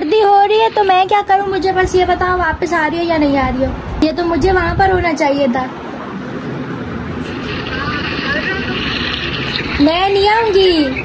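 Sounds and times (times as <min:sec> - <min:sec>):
woman speaking: 0:00.0 - 0:03.2, 0:09.7 - 0:11.0.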